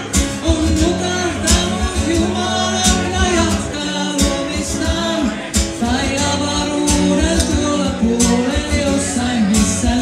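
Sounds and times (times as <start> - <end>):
guitar playing: 0.0 - 10.0
person singing: 0.0 - 10.0.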